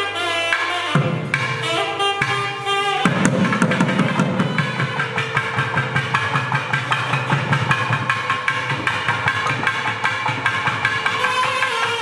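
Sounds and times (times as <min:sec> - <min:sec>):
barrel drums playing fast strokes: 0:03.0 - 0:12.0.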